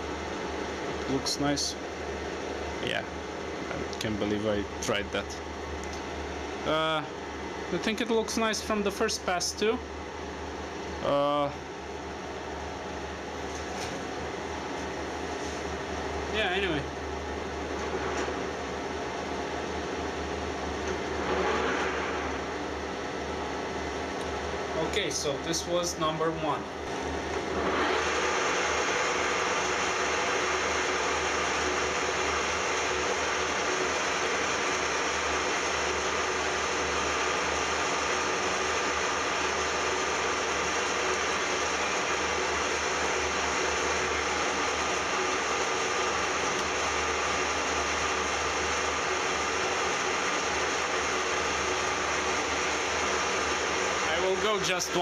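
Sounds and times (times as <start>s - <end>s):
metal lathe running: 27.4s - 55.0s.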